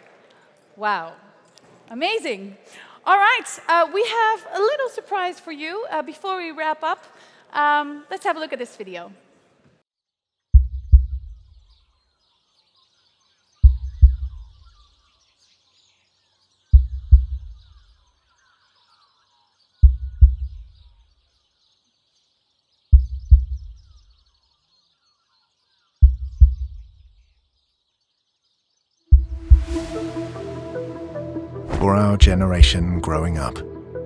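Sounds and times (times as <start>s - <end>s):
heartbeat double thump: 10.6s - 11.6s, 13.6s - 14.5s, 16.8s - 17.6s, 19.8s - 20.8s, 23.0s - 23.9s, 26.0s - 27.0s, 29.1s - 30.0s.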